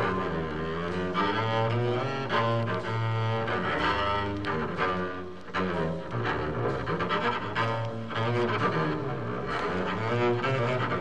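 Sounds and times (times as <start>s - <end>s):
bowed double bass: 0.0s - 11.0s
jazz instruments: 0.0s - 11.0s.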